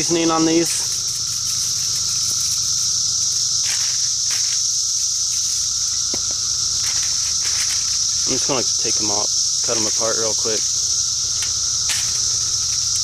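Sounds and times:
cicadas droning: 0:00.0 - 0:13.0.

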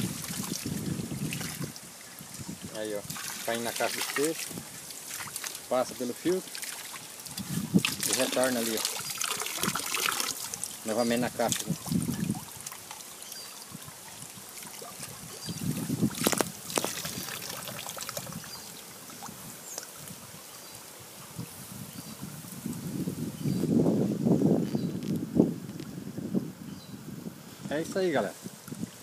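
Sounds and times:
water trickling into tank: 0:00.0 - 0:20.1
wind rumbling on microphone: 0:00.0 - 0:29.0.

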